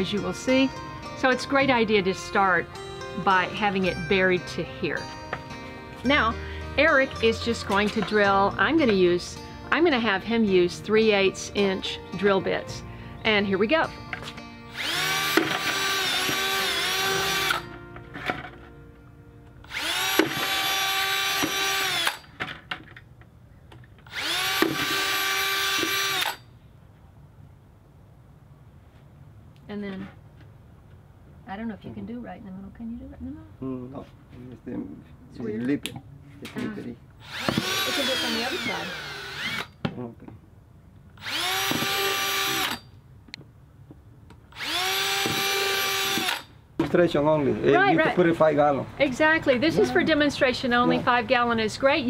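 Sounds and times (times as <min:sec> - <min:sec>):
cordless drill boring through plastic: 0:14.8 - 0:17.6, 0:19.7 - 0:22.3, 0:24.0 - 0:26.4, 0:37.2 - 0:39.8, 0:41.2 - 0:42.8, 0:44.5 - 0:46.5.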